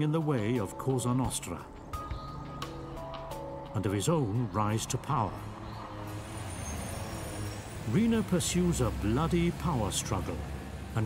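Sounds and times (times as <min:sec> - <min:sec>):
distant city traffic hum: 0:01.2 - 0:11.0.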